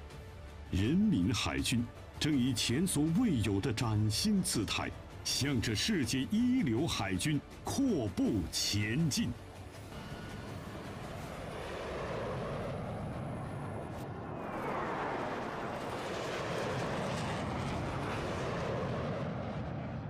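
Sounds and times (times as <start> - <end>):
jet aircraft roar: 0.9 - 20.0.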